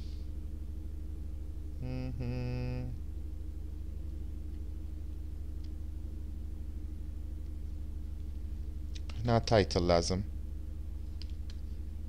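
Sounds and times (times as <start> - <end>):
steady low hum: 0.0 - 12.0
man saying umm: 1.8 - 3.0.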